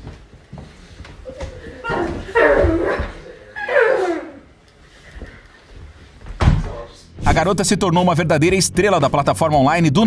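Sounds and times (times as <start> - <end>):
dog-like yelps: 1.8 - 4.4.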